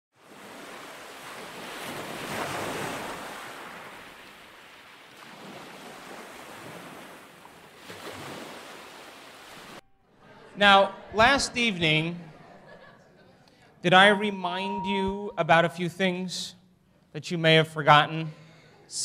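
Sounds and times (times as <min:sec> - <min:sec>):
ocean waves washing in: 0:00.2 - 0:09.8.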